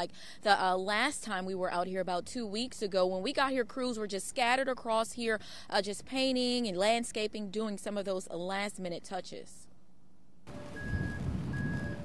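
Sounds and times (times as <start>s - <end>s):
reversing alarm beeping: 10.5s - 12.0s.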